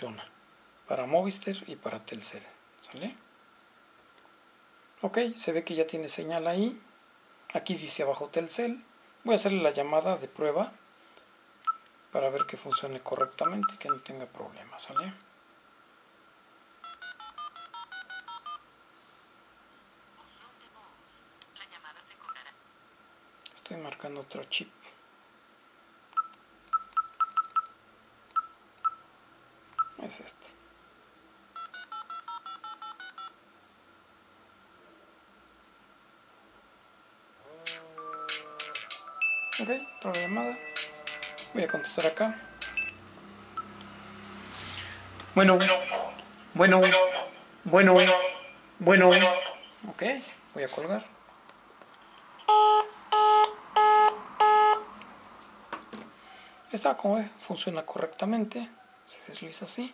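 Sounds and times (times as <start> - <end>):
phone keypad beeps: 16.8 - 18.6, 26.2 - 27.7, 31.6 - 33.3.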